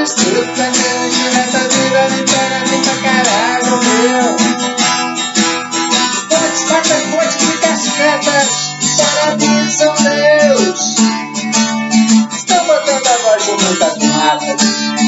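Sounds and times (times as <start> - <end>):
man singing: 0.0 - 4.8, 5.9 - 11.2, 12.2 - 15.0
acoustic guitar strummed: 0.0 - 15.0.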